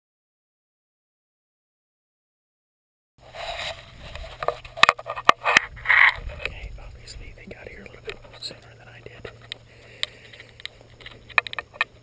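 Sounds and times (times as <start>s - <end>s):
steady low hum: 3.2s - 12.0s
camera handling clicks and scrapes: 3.3s - 6.5s, 9.2s - 12.0s
breathy whisper-like sound: 6.4s - 11.2s.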